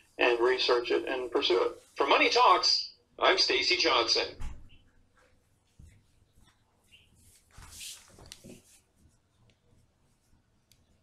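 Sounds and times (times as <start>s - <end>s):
faint rustle: 4.8s - 10.4s.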